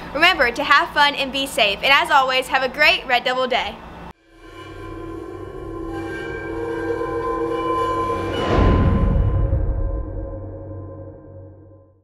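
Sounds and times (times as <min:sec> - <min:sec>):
sustained droning chord: 0:04.1 - 0:12.0
low rumble: 0:04.2 - 0:12.0.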